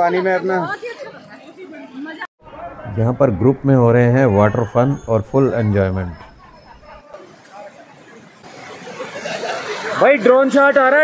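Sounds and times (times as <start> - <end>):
man speaking: 2.6 - 6.2
flowing river water: 7.1 - 11.0.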